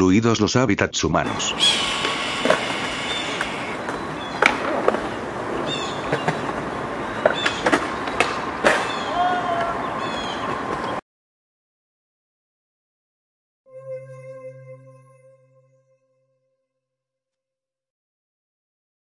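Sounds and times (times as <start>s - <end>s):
steady hiss: 1.3s - 3.8s
hawk calls: 1.3s - 7.8s.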